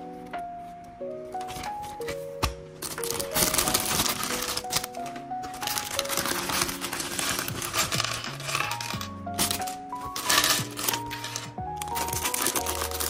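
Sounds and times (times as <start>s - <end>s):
background music: 0.0s - 13.0s
plastic bag crinkling: 2.8s - 13.0s
plastic bricks clattering on wood: 2.8s - 13.0s.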